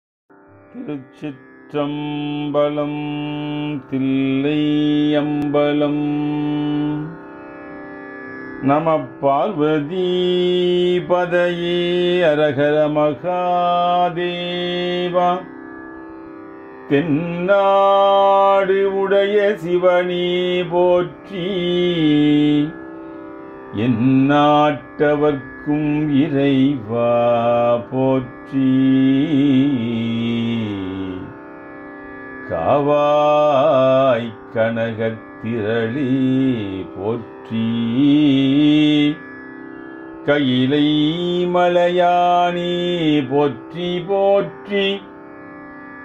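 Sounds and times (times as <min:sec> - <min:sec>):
man chanting: 0:00.7 - 0:07.2, 0:08.6 - 0:15.5, 0:16.9 - 0:22.8, 0:23.7 - 0:31.3, 0:32.4 - 0:39.2, 0:40.2 - 0:45.1.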